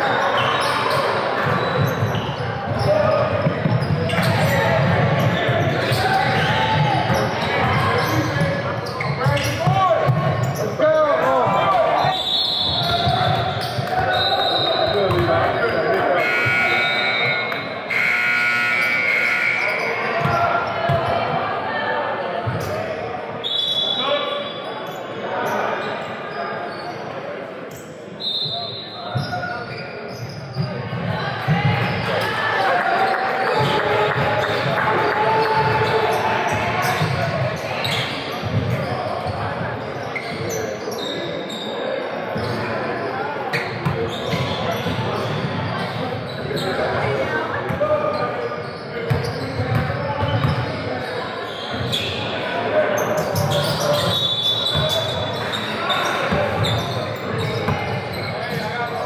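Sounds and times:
sneakers squeaking: 0.0s - 21.5s, 22.4s - 59.0s
voices echoing in a hall: 0.0s - 59.0s.

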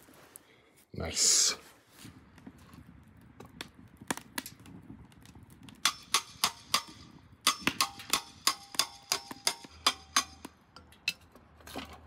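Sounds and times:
sharp metallic taps: 5.8s - 11.2s.

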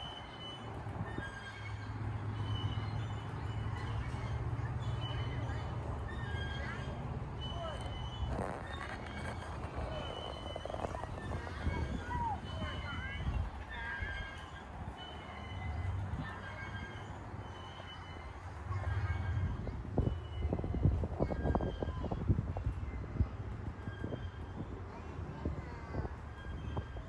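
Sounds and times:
wind buffeting microphone: 0.7s - 15.0s, 18.5s - 27.0s.

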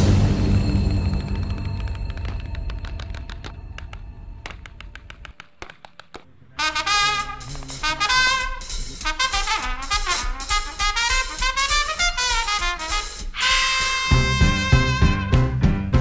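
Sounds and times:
swing band brass: 6.6s - 16.0s
drum-heavy music: 6.7s - 16.0s.

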